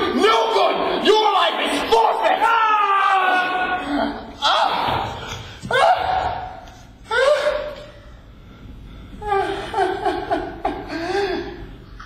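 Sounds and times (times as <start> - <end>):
man yelling: 0.0 - 5.1.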